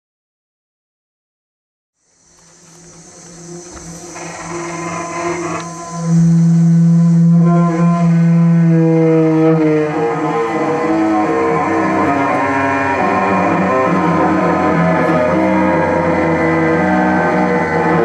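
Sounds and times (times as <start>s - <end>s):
faint high hiss: 2.0s - 13.4s
cello bowed low drone: 2.4s - 18.0s.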